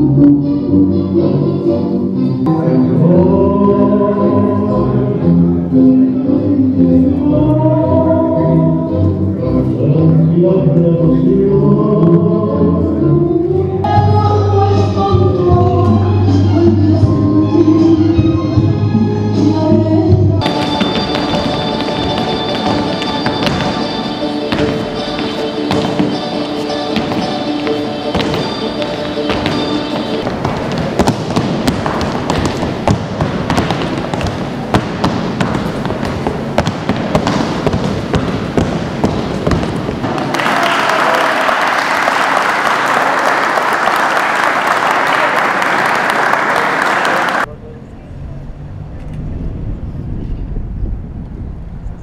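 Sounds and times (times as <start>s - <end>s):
folk dance music: 11.2s - 43.4s
heel stamps on tiled floor: 28.2s - 40.3s
audience applauding: 40.0s - 47.5s.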